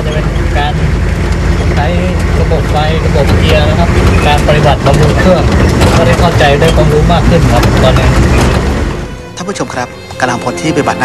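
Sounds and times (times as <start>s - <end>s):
vehicle engine droning: 0.0s - 11.0s
man speaking: 1.8s - 8.2s.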